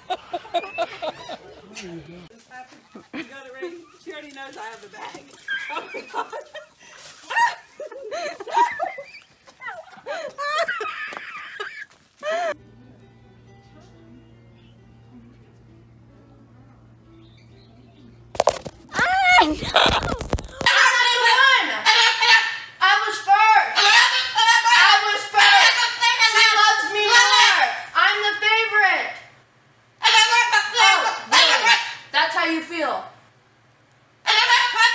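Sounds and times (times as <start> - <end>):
turkey calling: 17.2 - 22.8, 34.2 - 34.9
wings flapping: 18.4 - 21.0
cockatoo calling loudly: 18.6 - 28.3, 30.0 - 32.3, 34.2 - 34.9.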